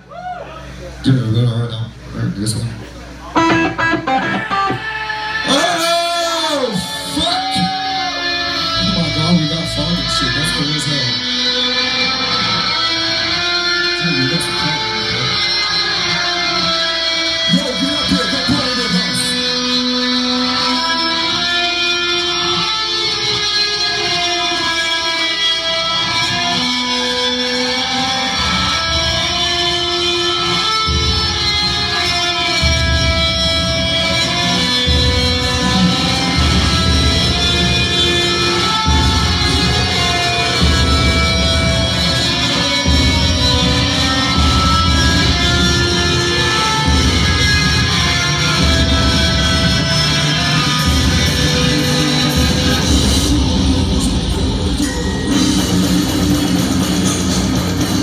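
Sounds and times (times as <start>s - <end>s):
heavy low-tuned guitar chugs: 3.0s - 58.0s
death metal band playing live: 3.1s - 58.0s.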